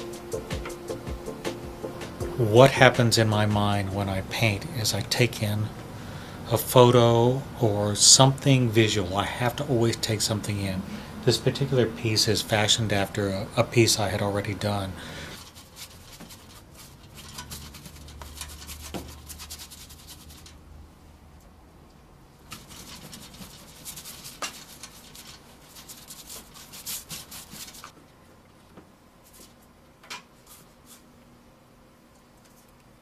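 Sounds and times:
paintbrush scrubbing on canvas: 15.4 - 20.6, 22.5 - 27.9, 30.4 - 31.1.

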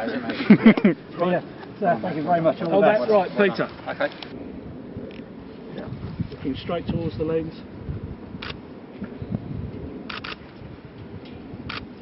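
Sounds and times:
camera shutter clicks: 8.4 - 8.6, 10.1 - 10.4, 11.7 - 11.9.

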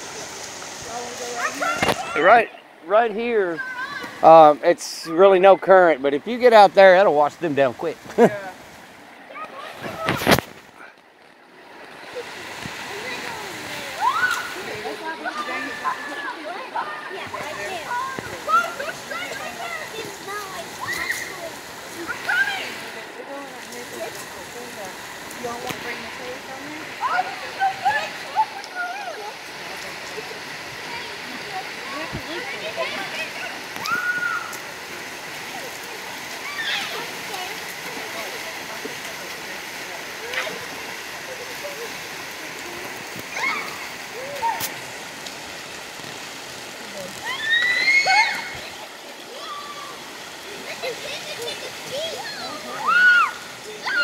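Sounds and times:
children splashing in water: 0.0 - 2.6, 3.3 - 4.6, 7.8 - 54.0
children shouting and chattering: 0.0 - 4.4, 8.3 - 11.0, 11.6 - 54.0
river running over rocks: 0.0 - 54.0.

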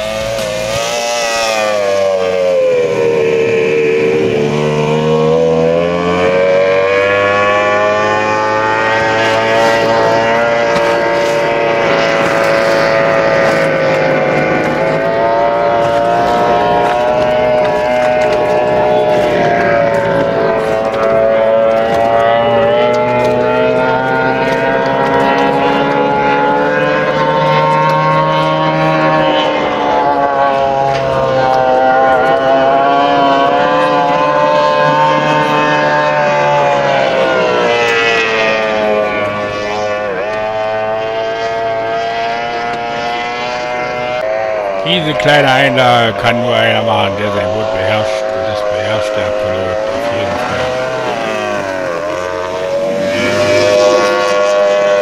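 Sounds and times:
outboard engine running hard: 0.0 - 55.0.

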